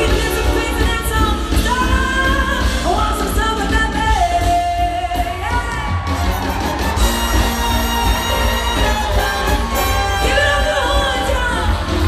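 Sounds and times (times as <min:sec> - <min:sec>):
woman singing pop vocal: 0:00.0 - 0:06.1, 0:09.1 - 0:12.0
band playing: 0:00.0 - 0:12.0.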